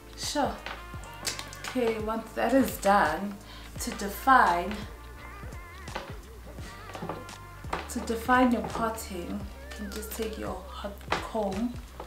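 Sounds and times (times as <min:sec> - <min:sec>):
music with wavering high melody: 0:00.0 - 0:12.0.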